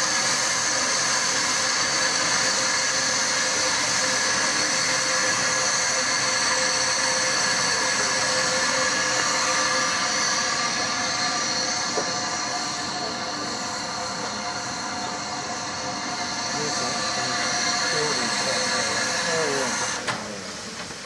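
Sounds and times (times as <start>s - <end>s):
steam hissing from locomotive: 0.0s - 21.0s.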